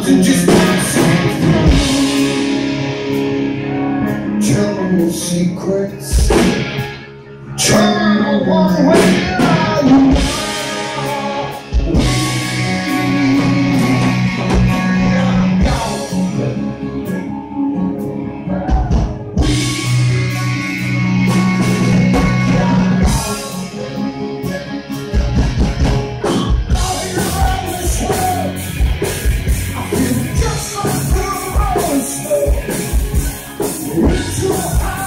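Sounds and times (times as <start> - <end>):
live hard rock band: 0.0 - 35.0.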